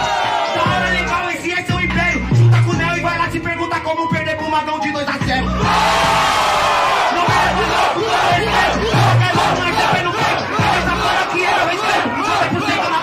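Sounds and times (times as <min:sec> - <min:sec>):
crowd yelling and cheering: 0:00.0 - 0:01.7, 0:05.4 - 0:13.0
deep bass beat: 0:00.0 - 0:04.5, 0:05.1 - 0:13.0.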